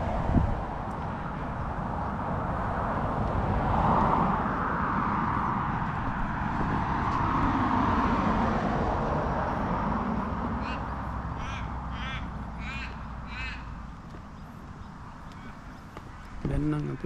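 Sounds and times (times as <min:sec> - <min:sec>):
car driving past: 0:00.0 - 0:15.9
crow cawing: 0:10.5 - 0:14.0, 0:15.2 - 0:16.3.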